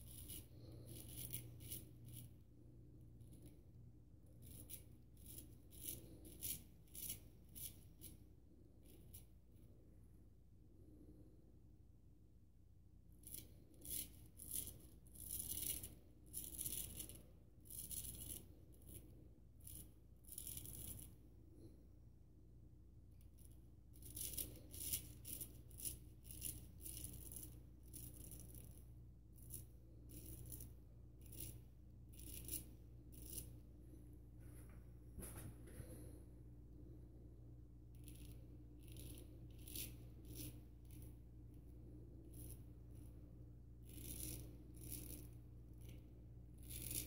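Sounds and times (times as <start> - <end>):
razor scraping stubble: 0.0 - 2.3, 4.4 - 8.2, 23.4 - 28.8, 29.4 - 33.6, 38.0 - 41.1, 43.9 - 46.0, 46.6 - 47.0.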